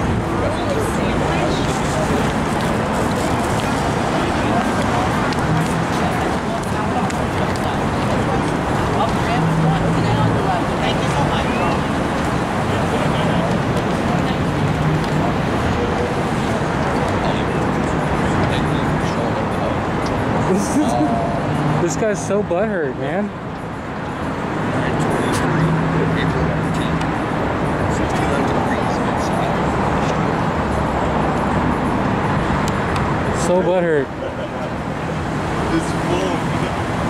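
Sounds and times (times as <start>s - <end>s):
faint voices: 0.0s - 37.0s
passing traffic rumble: 0.0s - 37.0s.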